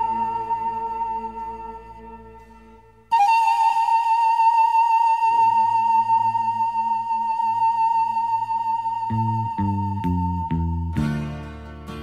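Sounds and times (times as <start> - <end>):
pan flute high note with vibrato: 3.1 - 10.9.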